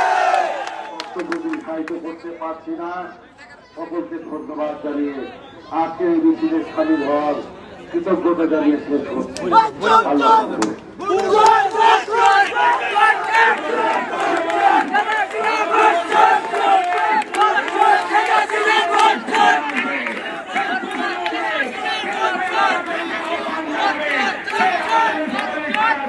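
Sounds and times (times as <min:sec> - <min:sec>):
crowd shouting slogans: 0:00.0 - 0:00.9, 0:09.3 - 0:26.0.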